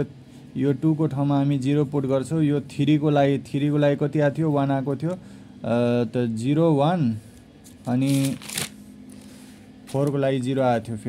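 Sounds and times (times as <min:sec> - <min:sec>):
faint steady hum: 0:00.0 - 0:11.0
notebook paper rustling: 0:07.8 - 0:10.1.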